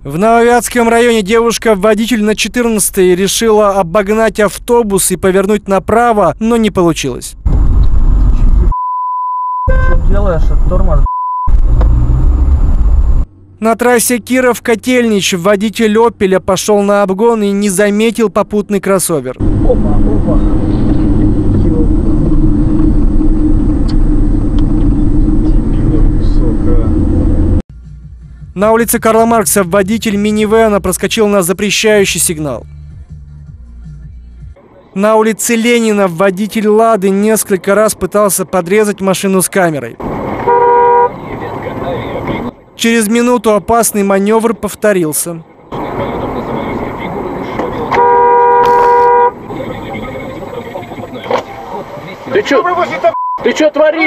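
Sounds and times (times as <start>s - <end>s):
car road and engine rumble: 0.0s - 54.0s
two-tone car horn blast: 9.6s - 10.2s, 40.4s - 41.2s, 47.9s - 49.4s.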